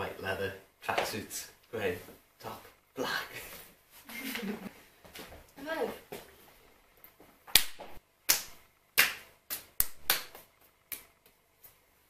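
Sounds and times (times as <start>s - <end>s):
sharp hand slaps: 7.5s - 11.4s.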